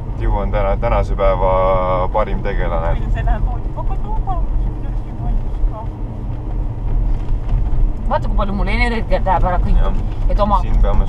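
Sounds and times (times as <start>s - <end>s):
car engine rumble: 0.0s - 11.0s
road noise inside car: 0.0s - 11.0s.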